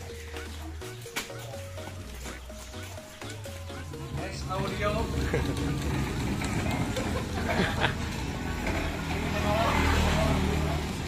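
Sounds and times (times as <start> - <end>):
low street rumble: 0.0 - 11.0
people talking: 4.2 - 5.5.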